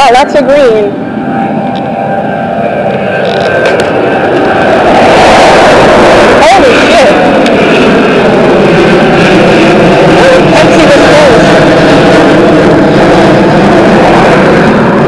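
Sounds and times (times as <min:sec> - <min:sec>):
loud engine noise: 0:00.0 - 0:15.0.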